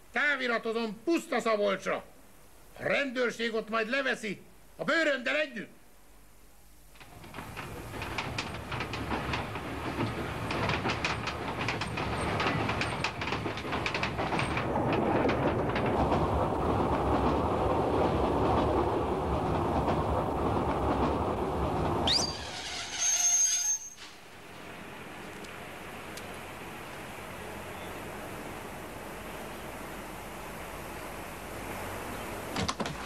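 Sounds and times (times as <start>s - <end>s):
train rumble: 7.0s - 33.0s
train wheels clicking on rails: 7.0s - 33.0s
short high whistle: 22.1s - 24.2s.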